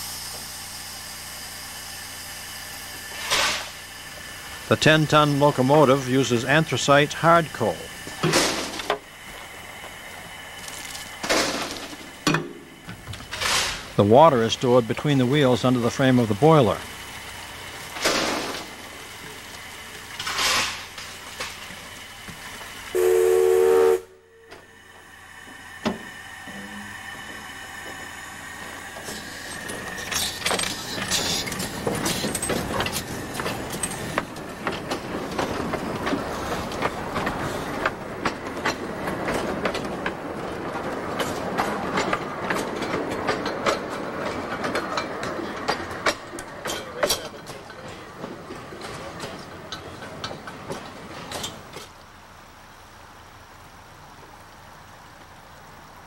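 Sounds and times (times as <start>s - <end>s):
train wheels rattling on rails: 0.0s - 53.1s
steam locomotive whistle: 22.9s - 24.8s.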